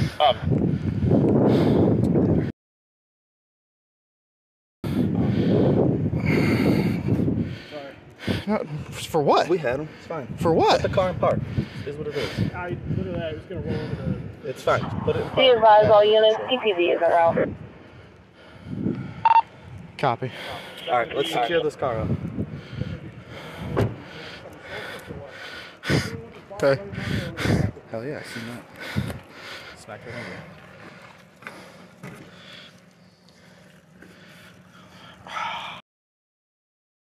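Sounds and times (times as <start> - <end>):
man talking: 7.8 - 15.6, 20.0 - 22.2, 24.0 - 28.7
steady low hum: 9.6 - 35.8
short electronic beep: 19.2 - 19.5
faint muffled voices: 20.3 - 29.1.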